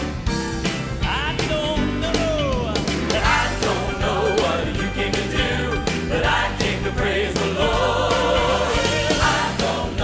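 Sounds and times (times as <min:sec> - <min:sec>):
band with drums and bass: 0:00.0 - 0:10.0
choir singing: 0:03.1 - 0:10.0.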